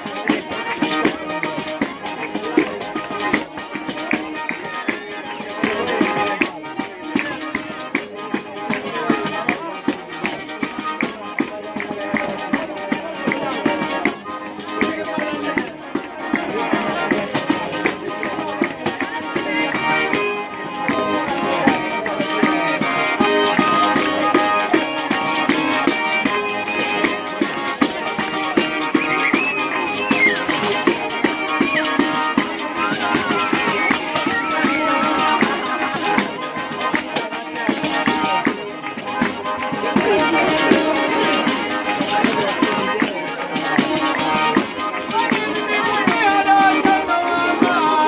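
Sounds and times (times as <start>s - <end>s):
button accordion folk dance: 0.0s - 48.0s.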